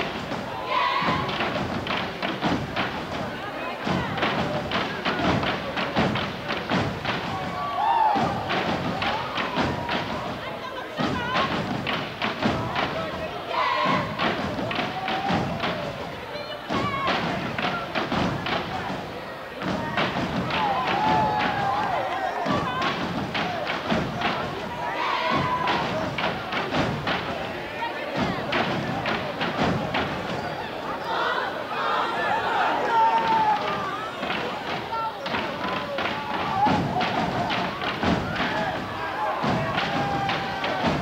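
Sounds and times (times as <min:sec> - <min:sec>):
hand claps in unison: 0:01.2 - 0:03.2, 0:03.9 - 0:10.4, 0:11.2 - 0:13.1, 0:14.0 - 0:16.1, 0:19.6 - 0:27.5, 0:28.4 - 0:30.4, 0:33.1 - 0:41.0
foot stomps on hard floor: 0:16.7 - 0:21.9, 0:34.2 - 0:41.0.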